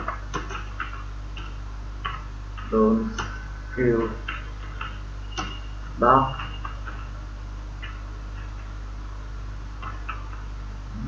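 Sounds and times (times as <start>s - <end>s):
keyboard keys clicking: 0.0s - 3.4s
steady low hum: 0.0s - 11.0s.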